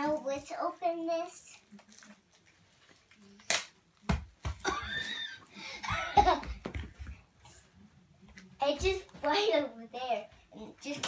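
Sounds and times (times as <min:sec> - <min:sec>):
child laughing: 0:04.6 - 0:06.6.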